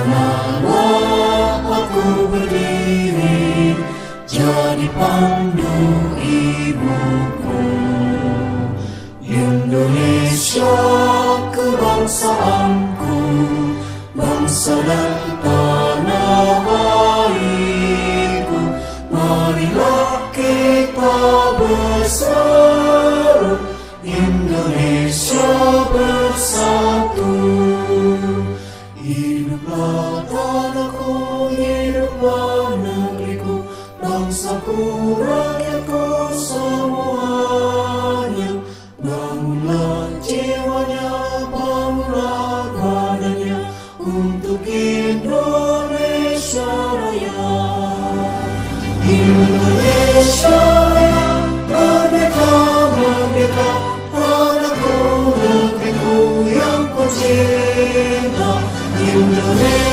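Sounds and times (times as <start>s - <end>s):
men singing: 0.0s - 59.9s.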